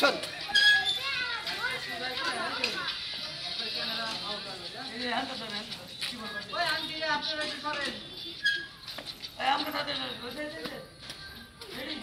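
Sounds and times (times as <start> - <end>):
high-pitched voices calling out: 0.0 - 10.3.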